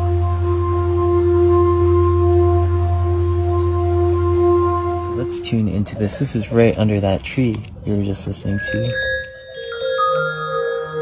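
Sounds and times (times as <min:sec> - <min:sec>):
synthesized held notes: 0:00.0 - 0:11.0.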